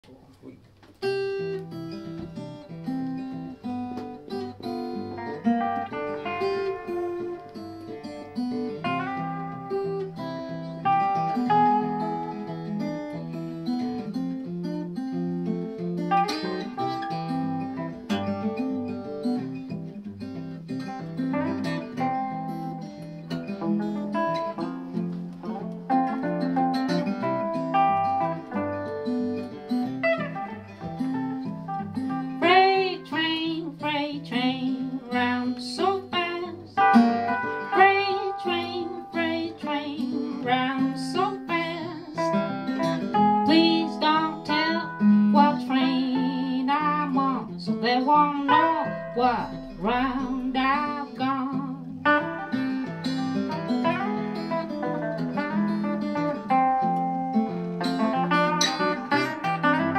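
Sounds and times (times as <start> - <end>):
acoustic guitar: 0.0 - 59.9
electric guitar: 0.0 - 59.9.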